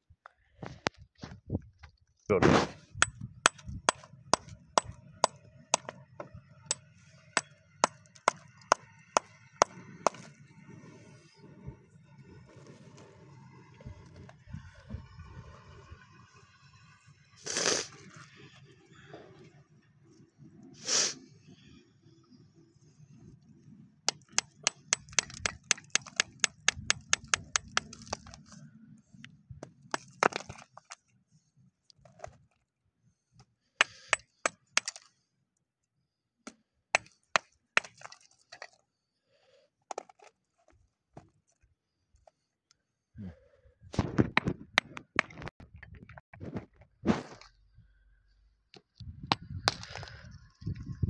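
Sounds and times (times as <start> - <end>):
hammer striking rock: 3.0 - 10.3, 24.1 - 28.4, 29.9 - 30.6, 33.8 - 35.0, 37.0 - 38.2.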